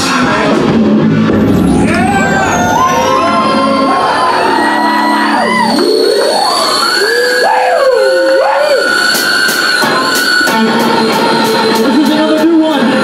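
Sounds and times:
electric guitar squeals: 1.4s - 12.4s.

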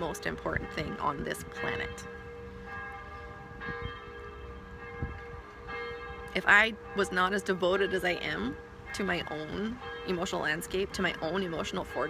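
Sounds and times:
bell-like ringing tones: 0.0s - 12.0s.

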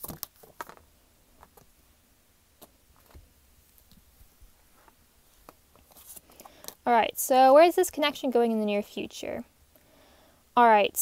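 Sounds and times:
cards ticking and sliding on cloth: 2.6s - 6.8s.

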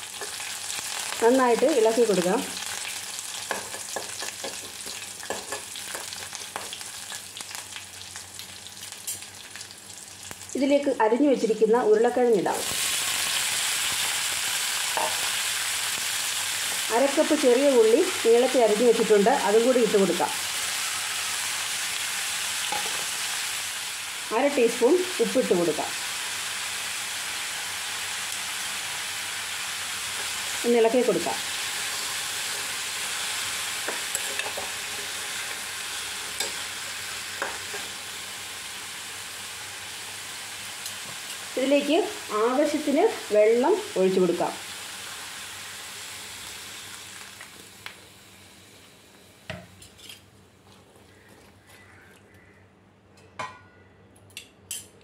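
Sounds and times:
chillies sizzling in hot oil: 0.0s - 51.9s.

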